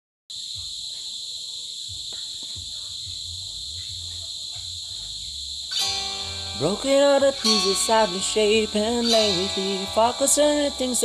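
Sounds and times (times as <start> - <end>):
crickets chirring: 0.3 - 11.0
guitar music: 5.7 - 11.0.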